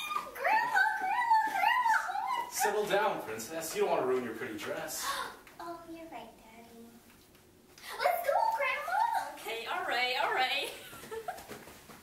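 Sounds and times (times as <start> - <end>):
woman squealing with excitement: 0.0 - 2.6.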